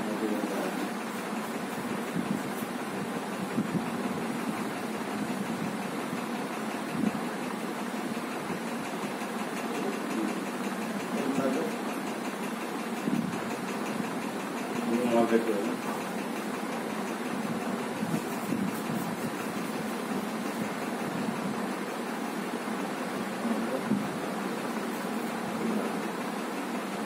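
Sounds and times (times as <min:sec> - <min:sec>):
steady mechanical running noise: 0:00.0 - 0:27.0.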